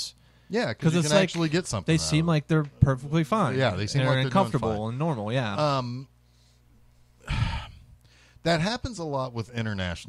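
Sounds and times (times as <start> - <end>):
man sighing: 7.2 - 8.3.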